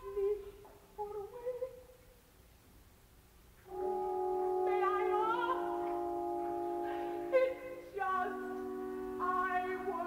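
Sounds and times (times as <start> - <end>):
soprano singing: 0.0 - 2.0, 3.7 - 10.0
faint background noise: 0.0 - 10.0.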